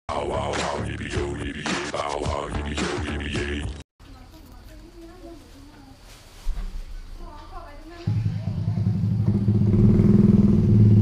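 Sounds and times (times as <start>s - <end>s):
small motorbike engine idling: 8.1s - 11.0s.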